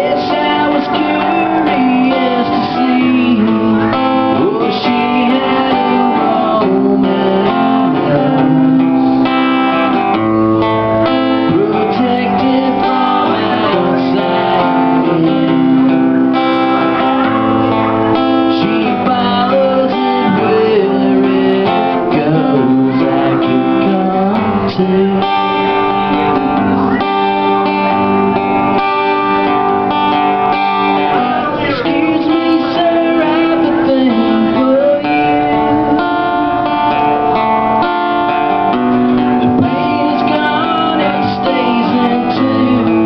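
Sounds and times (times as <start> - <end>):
acoustic guitar strummed and plucked: 0.0 - 43.0
person singing: 0.0 - 43.0.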